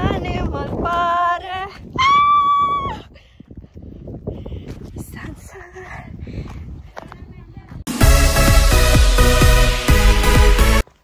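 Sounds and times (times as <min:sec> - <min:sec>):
wind rumbling on microphone: 0:00.0 - 0:07.9.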